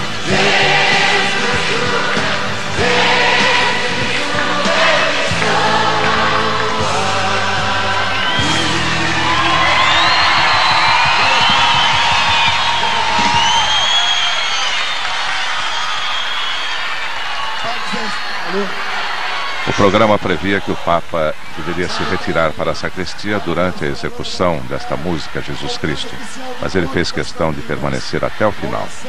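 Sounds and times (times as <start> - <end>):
man singing religious pop song: 0.0 - 10.0
crowd singing along: 0.0 - 11.1
band accompaniment: 0.0 - 13.7
crowd cheering: 0.0 - 29.0.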